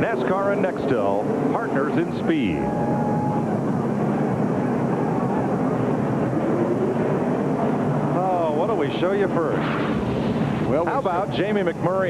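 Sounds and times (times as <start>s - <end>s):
race car engine revving: 0.0s - 11.8s.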